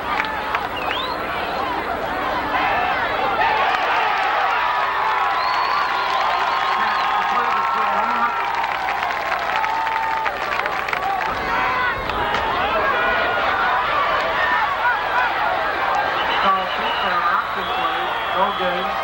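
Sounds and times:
crowd talking and shouting: 0.0s - 19.0s.

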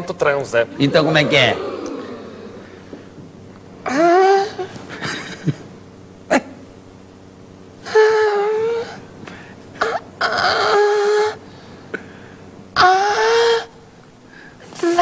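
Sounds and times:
man's falsetto moans: 3.8s - 4.7s, 7.8s - 9.0s, 9.8s - 11.4s, 12.8s - 13.8s.

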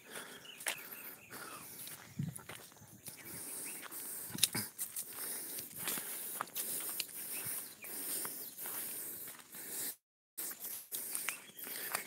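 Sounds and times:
footsteps through tall grass: 0.1s - 12.0s.

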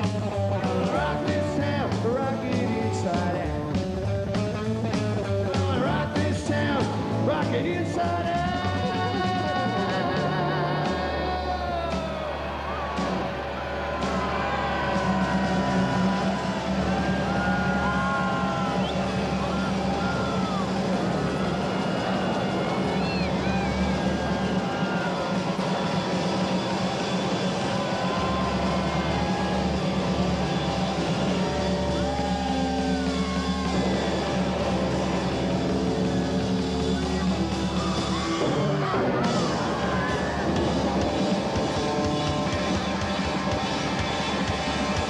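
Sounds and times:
rockabilly band playing: 0.0s - 45.0s.

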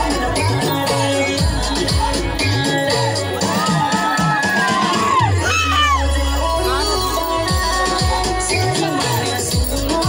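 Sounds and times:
crowd shouting and cheering: 0.0s - 10.0s
loud dance music: 0.0s - 10.0s.

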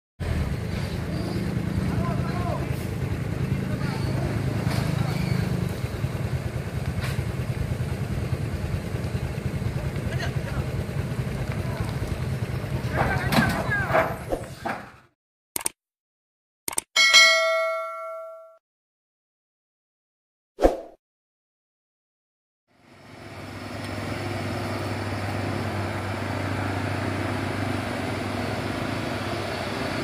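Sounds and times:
truck engine rumbling: 0.2s - 15.0s, 22.8s - 30.0s.

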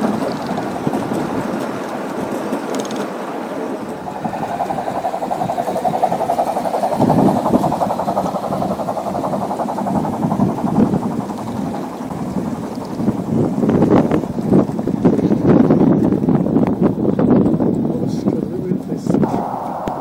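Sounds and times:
model train wheels rattling on track: 0.0s - 18.9s.

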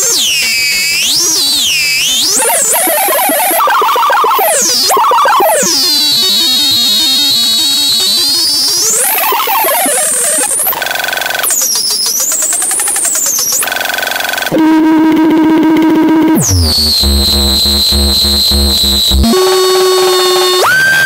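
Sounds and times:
garbled robotic voice fragments: 0.0s - 13.7s, 16.4s - 21.0s
high swooping electronic whistles: 0.1s - 10.8s, 16.4s - 21.0s
rapid stuttering buzz: 0.1s - 21.0s.

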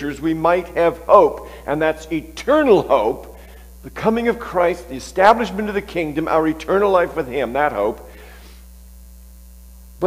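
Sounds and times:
faint hiss: 0.0s - 10.0s
low electrical mains hum: 0.0s - 10.0s.

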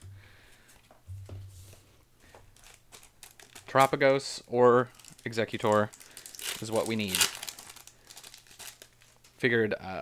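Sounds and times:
cards and foil pack rustling: 2.5s - 9.6s.

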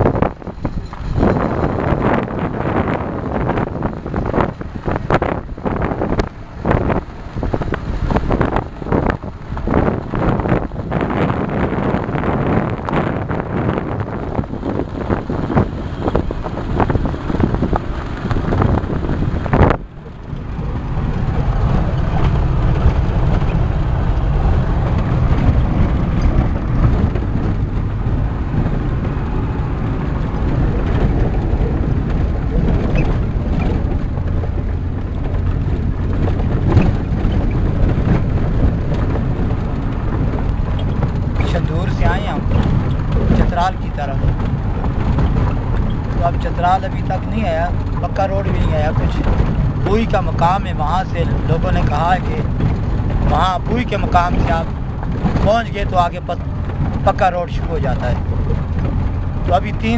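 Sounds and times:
vehicle engine and road rumble: 0.0s - 59.9s
wind on microphone: 0.0s - 59.9s.

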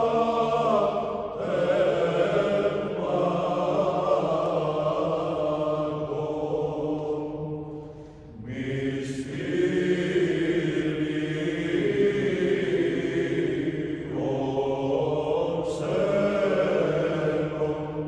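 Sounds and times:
choir chanting long notes: 0.0s - 18.0s.

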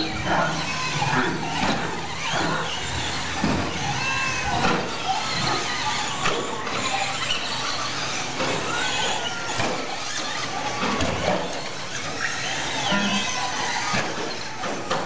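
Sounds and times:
electric motors whining: 0.0s - 15.0s.

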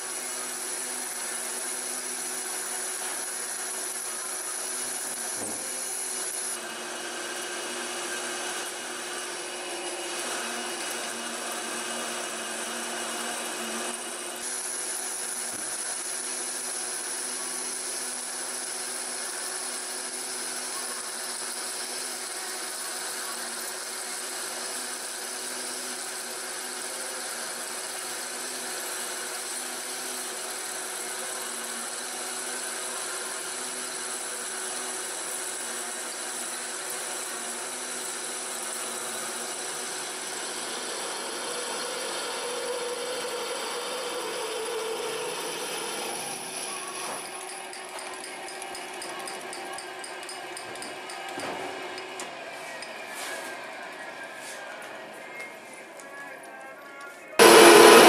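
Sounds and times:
drill scraping metal: 0.0s - 53.4s, 57.4s - 58.0s
lathe motor hum: 0.1s - 20.5s, 57.4s - 58.0s
thin high whine: 57.4s - 58.0s.

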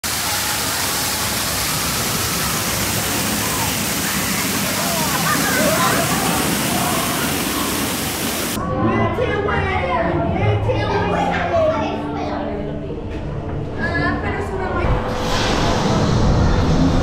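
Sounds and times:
waterfall splashing: 0.0s - 8.6s
faint voices: 0.1s - 13.1s.

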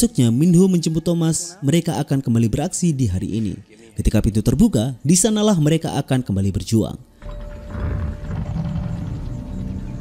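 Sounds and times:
film score music: 7.1s - 10.0s
stone doors grinding open: 7.2s - 10.0s.

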